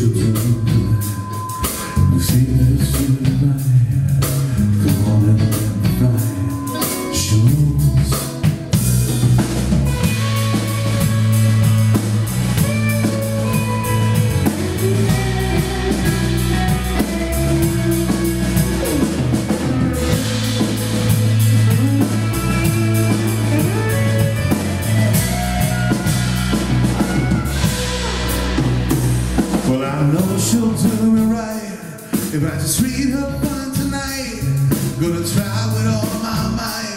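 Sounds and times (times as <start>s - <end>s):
bass guitar: 0.0s - 36.9s
drum kit beat: 0.0s - 36.9s
electric guitars: 0.0s - 36.9s
guitar melody: 5.3s - 31.7s.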